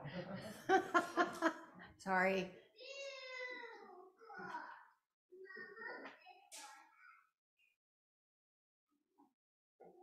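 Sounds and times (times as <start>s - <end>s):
faint high-pitched voice: 2.8s - 7.4s.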